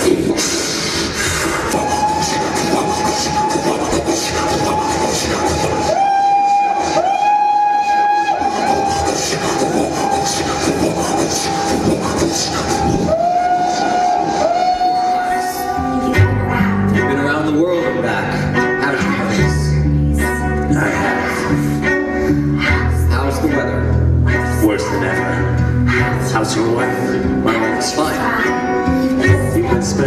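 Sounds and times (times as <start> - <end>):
band music with bass: 0.0 - 30.0
whistle-like calls: 0.7 - 15.9.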